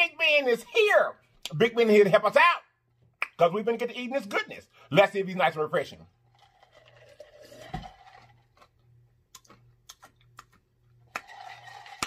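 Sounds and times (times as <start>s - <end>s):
sipping and swallowing a drink: 6.2s - 8.8s.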